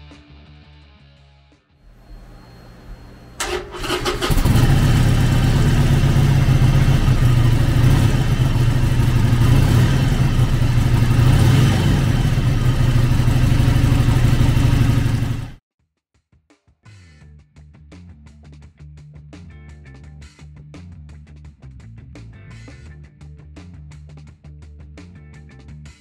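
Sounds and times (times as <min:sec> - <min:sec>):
motorcycle engine starting and running: 0:02.0 - 0:15.6.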